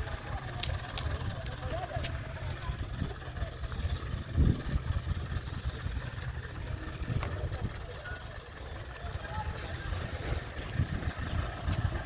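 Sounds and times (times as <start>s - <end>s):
faint crowd voices: 0.0s - 12.0s
vehicle engines rumbling: 0.0s - 12.0s.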